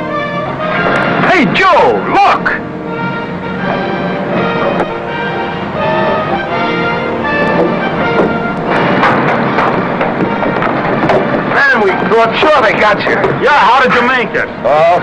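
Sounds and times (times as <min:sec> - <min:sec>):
soundtrack music: 0:00.0 - 0:15.0
men talking and calling out: 0:00.8 - 0:02.8, 0:09.4 - 0:15.0.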